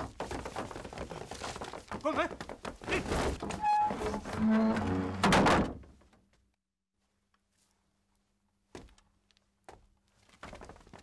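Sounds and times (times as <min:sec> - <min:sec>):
wooden gates slamming: 0:02.9 - 0:06.0.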